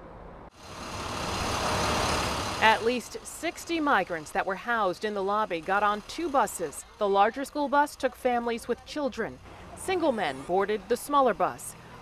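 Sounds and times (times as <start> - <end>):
outdoor street noise: 0.0 - 12.0.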